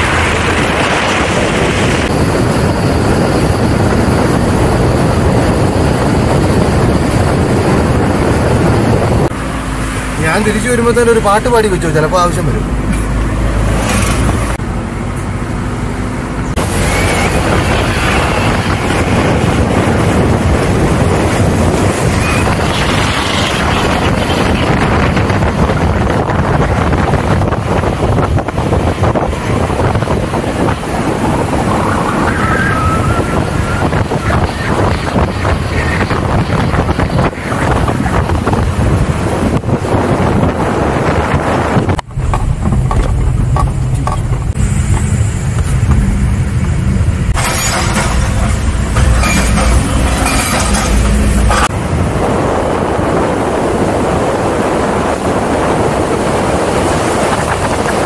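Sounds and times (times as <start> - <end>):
heavy rumble inside car: 0.0 - 58.0
road and engine noise: 0.0 - 58.0
wind rushing over microphone: 0.0 - 58.0.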